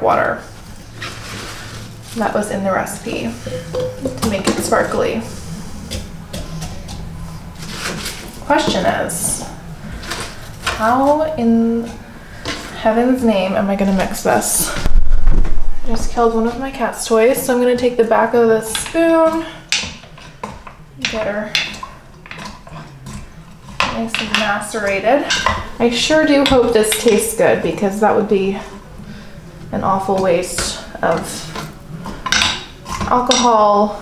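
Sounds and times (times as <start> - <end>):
spoon knocking fruit in glass pitcher: 3.5 - 4.7.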